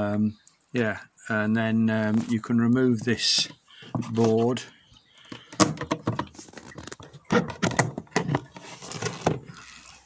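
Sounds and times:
wooden board knocking and clattering: 0:05.3 - 0:09.5.

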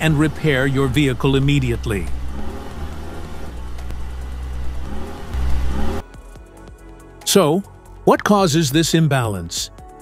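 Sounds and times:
car engine rumbling: 0:00.0 - 0:06.0.

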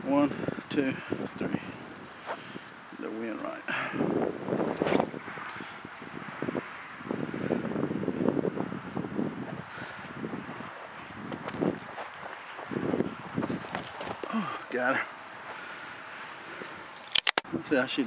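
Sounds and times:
wind gusting over microphone: 0:00.0 - 0:15.4.

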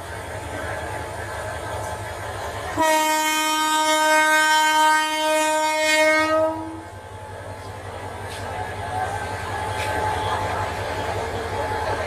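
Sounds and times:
train rumbling: 0:00.0 - 0:12.0
locomotive horn blast: 0:02.8 - 0:06.9.

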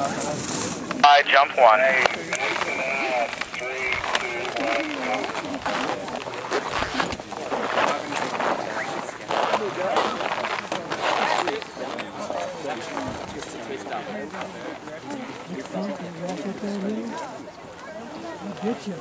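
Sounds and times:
people talking indistinctly: 0:00.0 - 0:19.0.

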